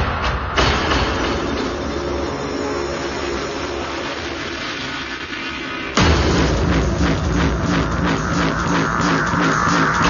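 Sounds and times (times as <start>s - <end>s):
low rumble: 0.0s - 10.0s
rushing noise: 0.0s - 10.0s.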